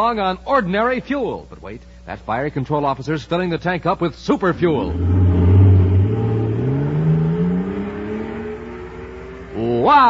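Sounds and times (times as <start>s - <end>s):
drone rising in pitch: 4.7s - 9.8s.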